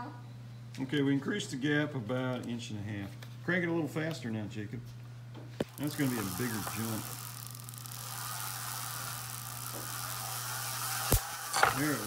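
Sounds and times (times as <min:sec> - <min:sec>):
electrostatic machine discs whirring: 0:05.6 - 0:12.0.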